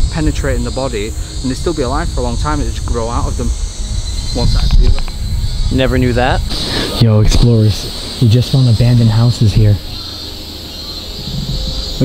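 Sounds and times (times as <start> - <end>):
low rumble: 0.0 - 10.0
insects droning: 0.0 - 12.0.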